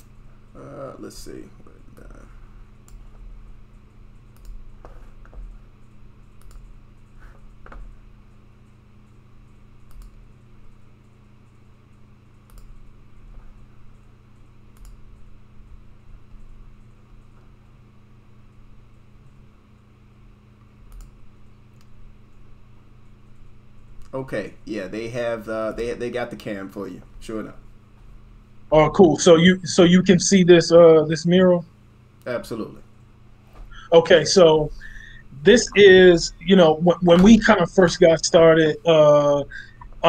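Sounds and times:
low electrical hum: 0:00.0 - 0:40.0
computer clicking and tapping: 0:02.8 - 0:15.4, 0:20.8 - 0:22.4.

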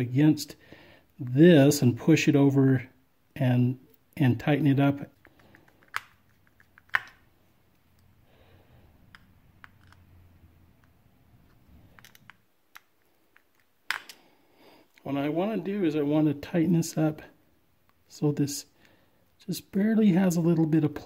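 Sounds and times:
faint handling noise: 0:09.0 - 0:15.1.

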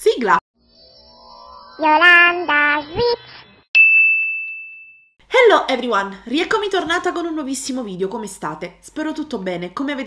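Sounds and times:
bright high ding: 0:03.8 - 0:05.2.

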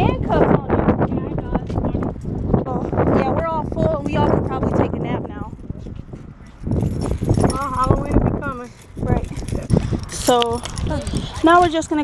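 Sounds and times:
indistinct talking: 0:00.0 - 0:12.0.

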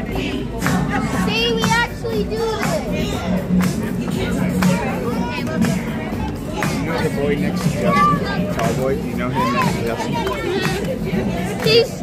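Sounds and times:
children shouting and cheering: 0:00.0 - 0:12.0
dance music: 0:00.0 - 0:12.0
child's high voice: 0:07.9 - 0:08.4.

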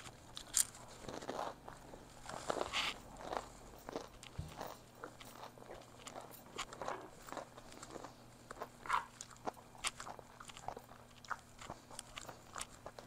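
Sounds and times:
chewing crispy food: 0:00.0 - 0:13.0.

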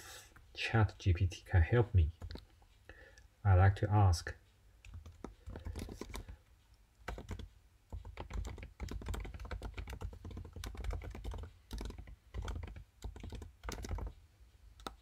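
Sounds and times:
computer keyboard typing: 0:02.1 - 0:02.5, 0:04.8 - 0:06.4, 0:07.0 - 0:14.2, 0:14.8 - 0:15.0.

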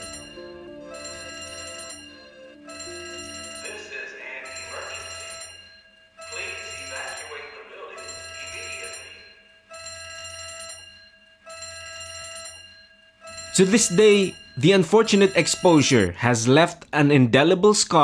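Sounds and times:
electronic building alarm ringing: 0:00.0 - 0:16.2.

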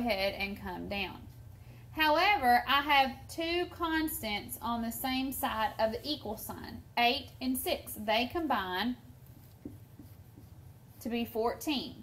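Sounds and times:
low room hum: 0:00.0 - 0:12.0
marker writing on whiteboard: 0:09.2 - 0:11.7.

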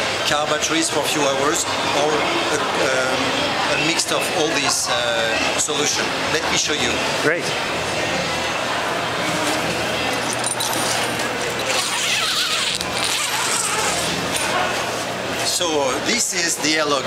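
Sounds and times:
zipper being pulled open: 0:10.4 - 0:14.5.

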